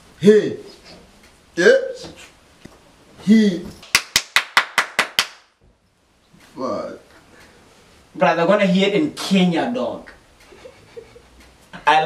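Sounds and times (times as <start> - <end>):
quick hand claps: 3.8 - 5.5.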